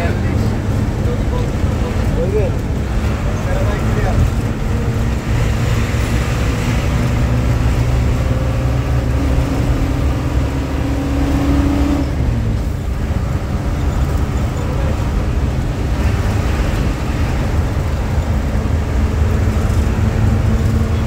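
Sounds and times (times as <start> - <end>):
bus engine and road rumble: 0.0 - 21.0.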